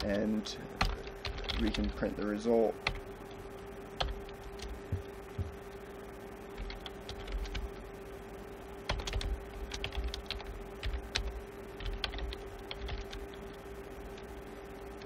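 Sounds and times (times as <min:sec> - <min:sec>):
computer keyboard typing: 0:00.8 - 0:02.1, 0:02.8 - 0:03.1, 0:04.0 - 0:05.6, 0:06.6 - 0:07.7, 0:08.8 - 0:15.0.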